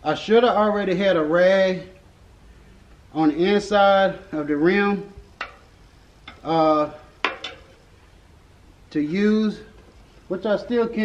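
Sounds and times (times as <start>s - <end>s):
man's voice: 3.1s - 5.1s, 8.9s - 9.7s, 10.3s - 11.0s.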